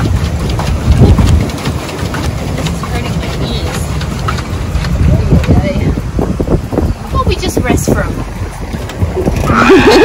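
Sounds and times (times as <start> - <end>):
water lapping: 0.0 - 10.0
wind buffeting microphone: 0.0 - 10.0.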